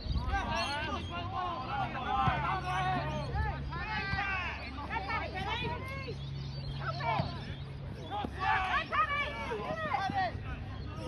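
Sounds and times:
people shouting and calling: 0.2s - 6.2s, 6.8s - 11.0s.

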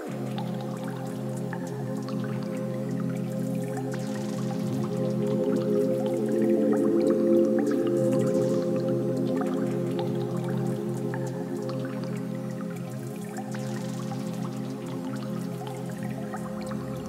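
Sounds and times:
synthesizer music: 3.4s - 11.8s.

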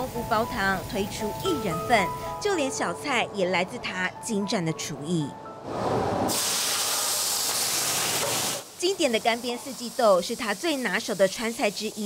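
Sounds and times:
food sizzling in hot oil: 6.3s - 12.0s.

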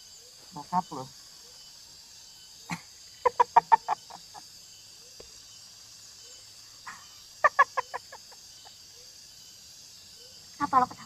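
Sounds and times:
person laughing: 2.7s - 4.4s, 7.4s - 8.7s.

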